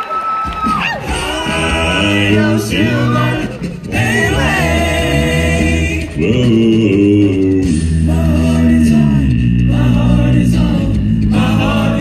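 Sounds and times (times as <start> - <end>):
a cappella group singing harmony: 1.0 - 12.0.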